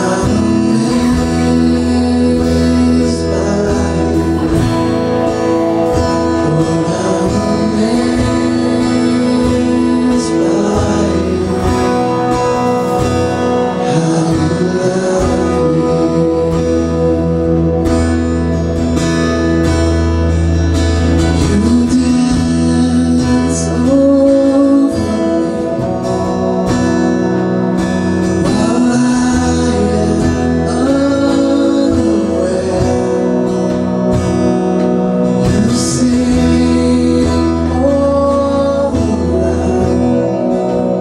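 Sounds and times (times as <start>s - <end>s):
man singing lead: 0.0s - 19.0s, 21.0s - 41.0s
acoustic guitar strumming: 0.0s - 41.0s
drum kit: 0.0s - 41.0s
electric bass: 0.0s - 41.0s
electric guitar: 0.0s - 41.0s.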